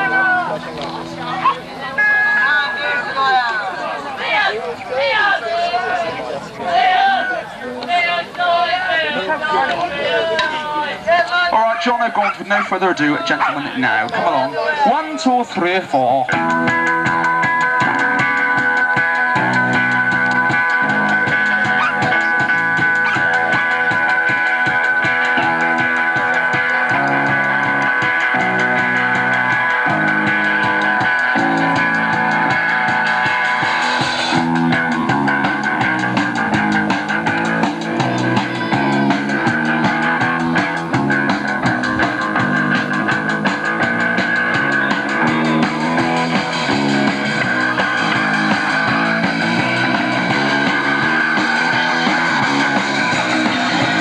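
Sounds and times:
bass guitar: 0.0 - 2.0, 16.2 - 54.0
drums: 15.4 - 54.0
electric guitars strumming: 15.8 - 54.0.

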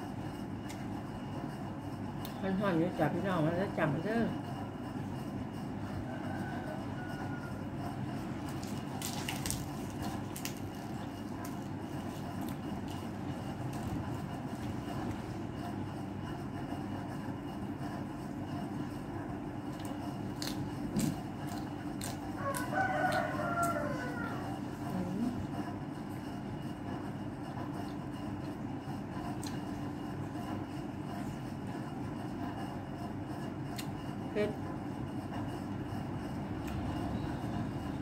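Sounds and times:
steady background hum: 0.0 - 38.0
rooster crowing: 5.8 - 8.2, 22.3 - 24.7.

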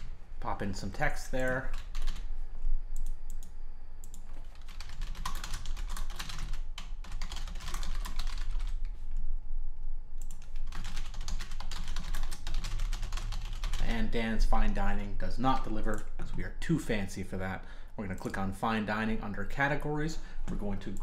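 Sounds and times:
typing on computer keyboard: 1.4 - 2.2, 3.0 - 8.8, 10.2 - 13.9.

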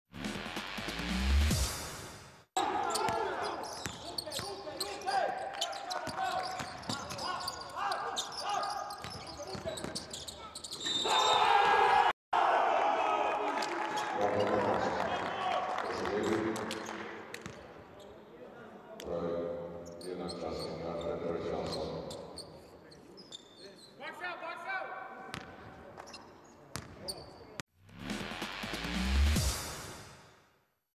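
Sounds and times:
sneaker squeaks on hardwood floor: 2.9 - 11.3, 21.6 - 24.0, 25.3 - 27.6.

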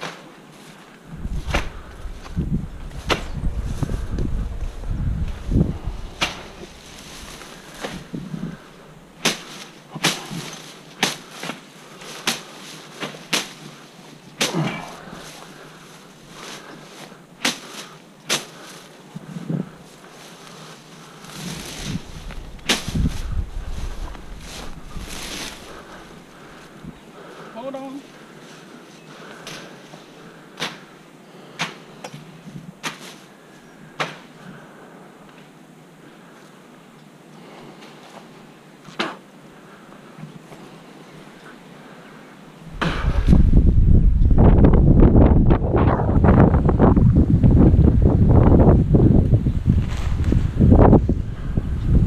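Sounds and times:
footsteps crunching through grass: 0.0 - 30.1, 49.3 - 51.2
wind buffeting microphone: 1.0 - 9.2, 21.2 - 27.1, 42.7 - 52.0.

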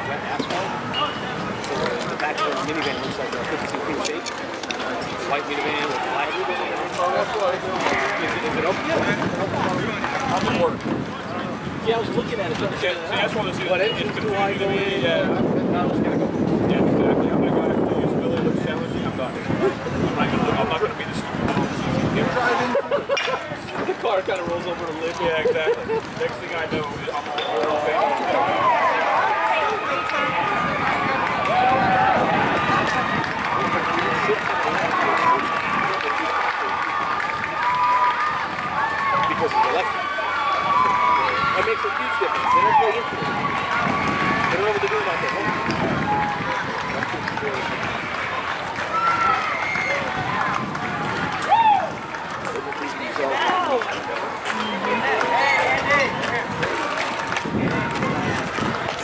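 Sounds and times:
crowd calling and chattering: 0.0 - 59.0.

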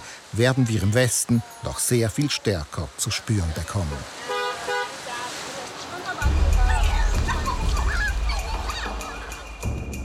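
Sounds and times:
faint street noise: 0.0 - 9.6
vehicle horn toots: 3.9 - 5.0.

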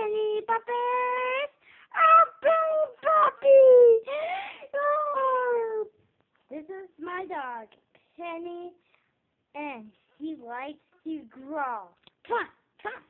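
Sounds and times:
girl singing wordless notes: 0.0 - 7.6.

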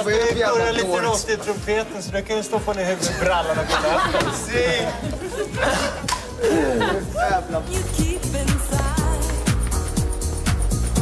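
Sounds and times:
dance music with steady beat: 0.0 - 11.0
group laughing and exclaiming: 3.1 - 7.8.

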